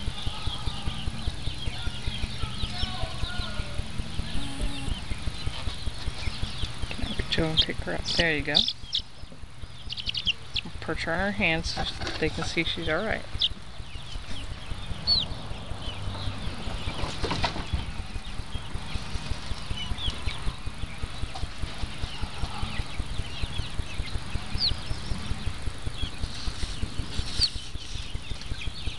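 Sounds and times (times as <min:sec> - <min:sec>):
high bird chirps: 0:00.0 - 0:10.8, 0:11.4 - 0:28.9
fast low thudding: 0:00.0 - 0:28.9.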